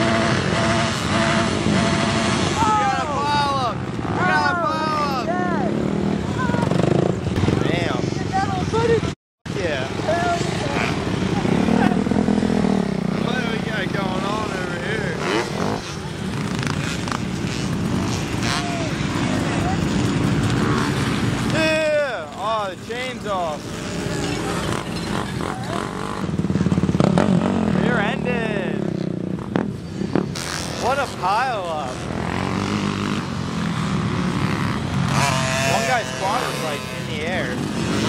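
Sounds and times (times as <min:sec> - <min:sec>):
quad engines running: 0:00.0 - 0:38.0
people shouting and whooping: 0:02.6 - 0:05.7.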